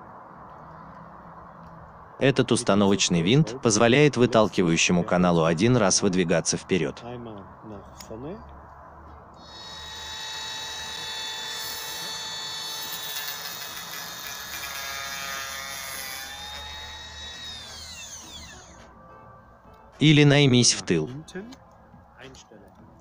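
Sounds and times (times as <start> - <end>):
milling machine high whine: 9.4 - 14.8, 15.8 - 18.8.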